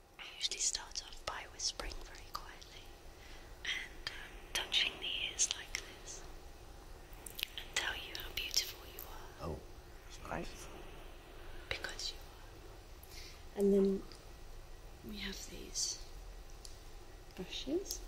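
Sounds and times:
woman whispering: 0.2 - 2.9, 3.6 - 6.3, 7.4 - 9.4, 11.7 - 12.3, 15.1 - 16.1, 17.4 - 18.0.

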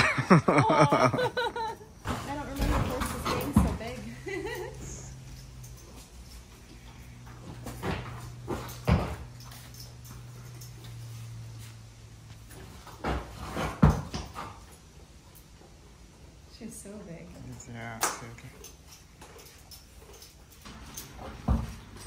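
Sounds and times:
hooves on concrete: 0.0 - 22.0
low steady hum: 0.0 - 22.0.

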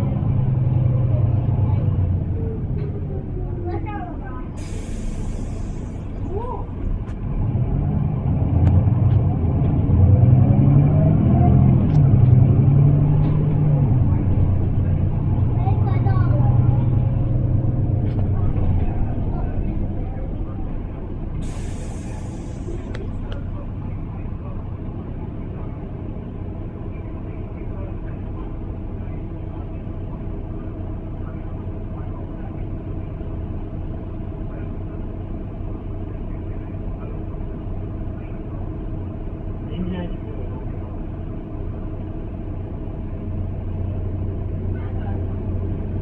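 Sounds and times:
bus diesel engine drone: 0.0 - 46.0
air brake hisses: 4.6 - 6.2, 21.4 - 23.0.

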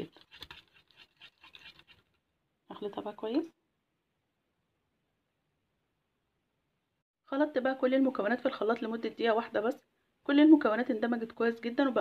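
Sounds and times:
whisk scraping glass bowl: 0.0 - 2.2.

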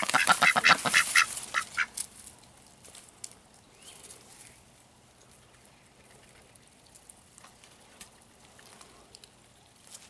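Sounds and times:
duck bills ticking in soil: 0.0 - 10.0.

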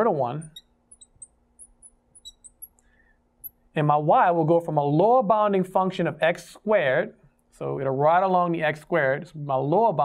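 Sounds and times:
marker squeaking on glass: 0.0 - 2.8.

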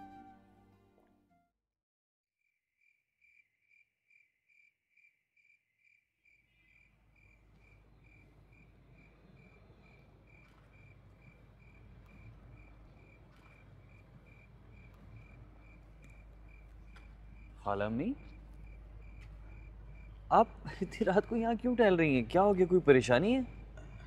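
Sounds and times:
crickets chirping: 2.8 - 24.0
low background rumble: 13.8 - 24.0.

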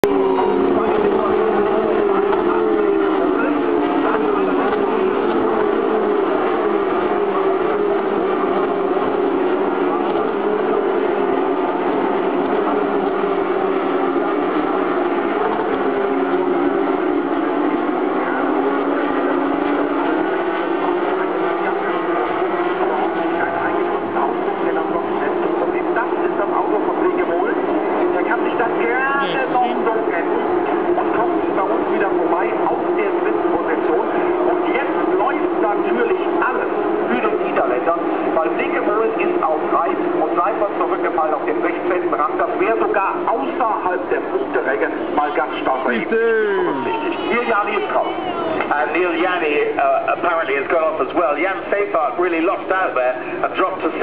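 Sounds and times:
race car engines passing: 0.0 - 54.0.

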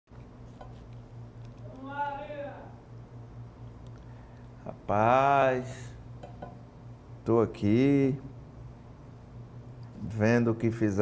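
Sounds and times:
low steady hum: 0.1 - 11.0.

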